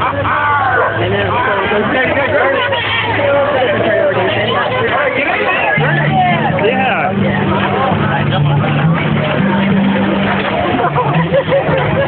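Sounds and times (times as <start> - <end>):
people chattering and calling out: 0.0 - 12.0.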